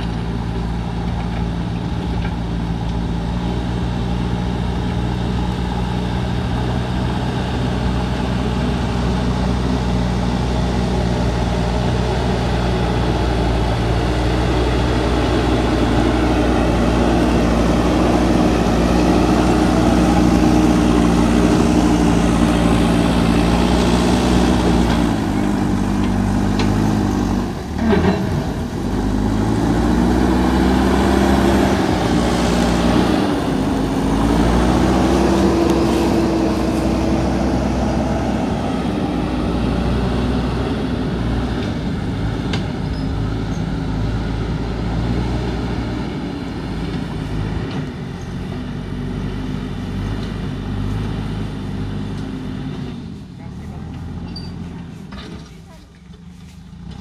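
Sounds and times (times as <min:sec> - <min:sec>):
diesel engine under load: 0:00.0 - 0:57.0.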